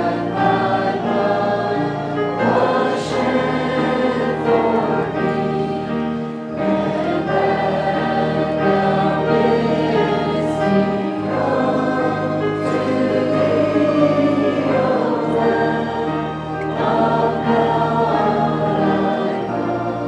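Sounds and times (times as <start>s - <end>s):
congregation singing a hymn: 0.0s - 20.0s
organ bass notes: 0.0s - 20.0s.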